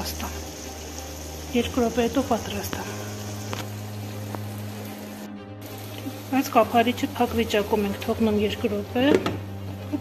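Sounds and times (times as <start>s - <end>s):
food bubbling in a pan: 0.0s - 8.3s.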